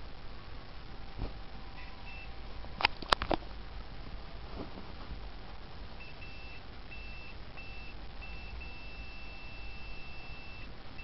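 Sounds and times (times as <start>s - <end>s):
multimeter continuity beeps: 1.8s - 2.4s, 6.0s - 11.0s.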